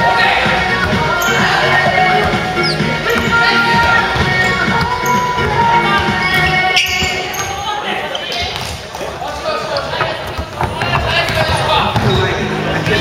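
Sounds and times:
players calling out: 0.0 - 13.0
basketball bouncing on wood floor: 1.8 - 5.0, 10.0 - 13.0.

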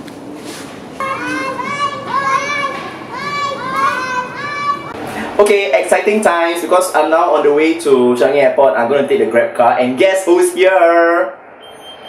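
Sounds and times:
children calling out: 1.0 - 5.0.

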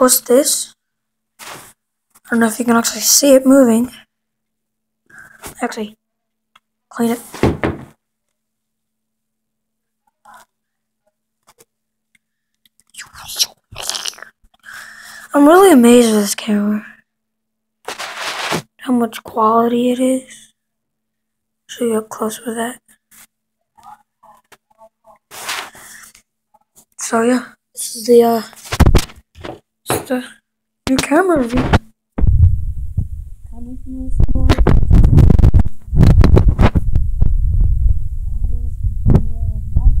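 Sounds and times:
faint scrape: 17.9 - 18.7, 25.3 - 26.0
handling noise on microphone: 17.9 - 18.7, 25.3 - 25.8, 31.0 - 33.3, 34.2 - 37.3
short rubbing scuffs: 17.9 - 18.7.

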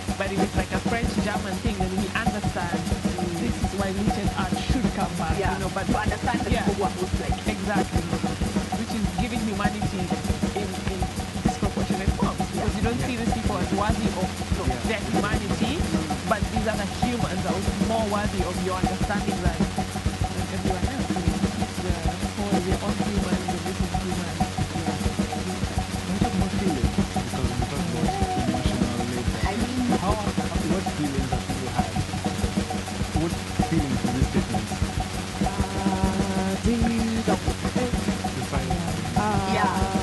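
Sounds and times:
fast pulsing electronic beat: 0.0 - 40.0
synthesizer low drone: 0.0 - 40.0
wavering sliding synth tones: 0.0 - 40.0.

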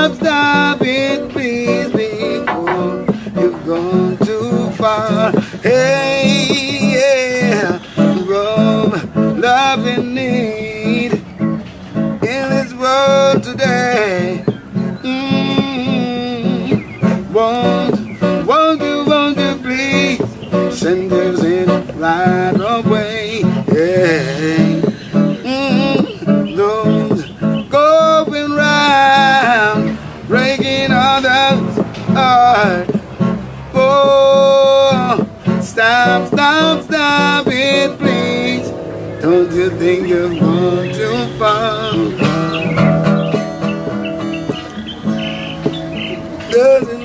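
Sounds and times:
acoustic guitar strumming: 0.0 - 47.0
man singing reggae song: 0.0 - 47.0.

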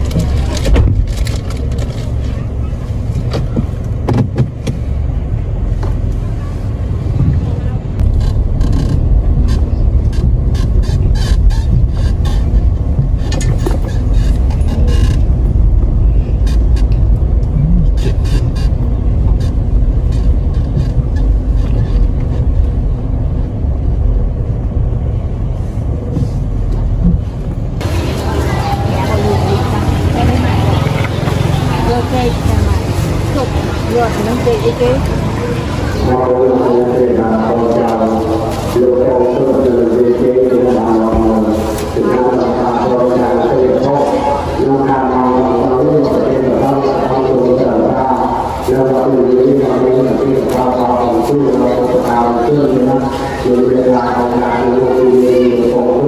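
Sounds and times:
voices: 0.0 - 24.2, 26.0 - 56.0
heavy low rumble: 0.0 - 56.0
people talking nearby: 5.7 - 8.0, 27.8 - 56.0.

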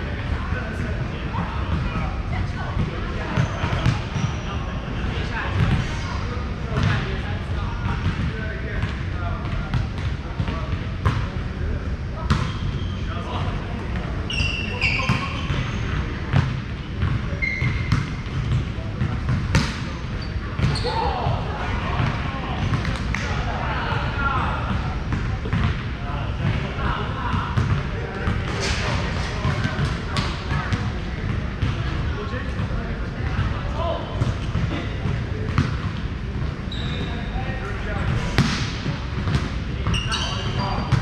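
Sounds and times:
shoe squeaks: 3.4 - 4.6, 12.4 - 13.1, 14.3 - 16.0, 17.4 - 18.0, 20.2 - 21.1, 36.7 - 37.4, 39.9 - 41.0.

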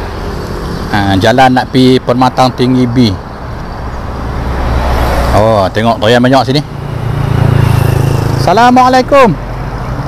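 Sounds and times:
vehicle passing by: 0.0 - 10.0.

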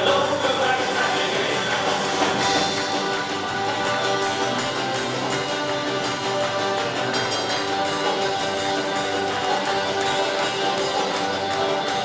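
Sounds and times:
drum kit beat: 0.0 - 12.0
strummed guitars: 0.0 - 12.0.

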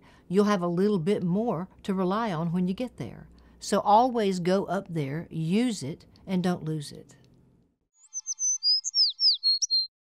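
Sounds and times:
high bird chirps and whistles: 8.0 - 10.0.

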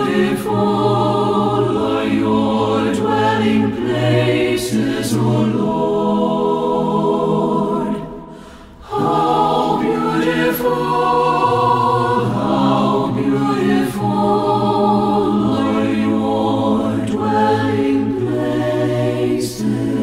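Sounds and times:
a cappella choir singing: 0.0 - 20.0.

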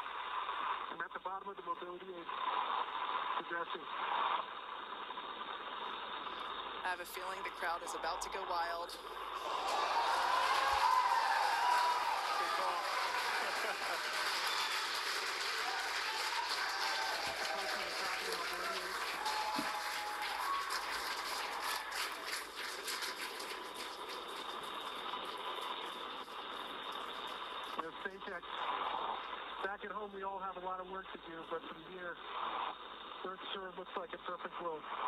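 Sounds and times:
voices: 6.8 - 22.5, 24.6 - 32.2
crowd cheering and applauding: 9.2 - 27.8.

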